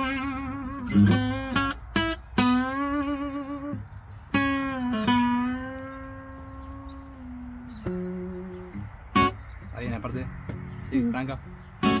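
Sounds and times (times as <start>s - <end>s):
acoustic guitar notes plucked: 0.0s - 12.0s.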